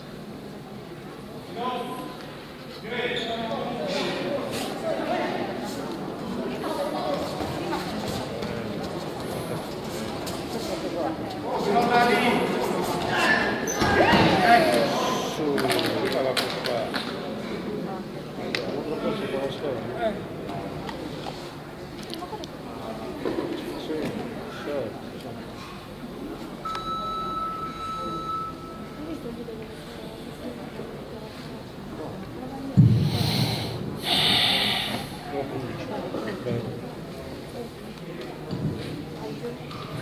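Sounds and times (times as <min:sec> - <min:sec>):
shouted voices echoing: 0:13.1 - 0:15.4
forceful hissing breaths: 0:32.9 - 0:35.4.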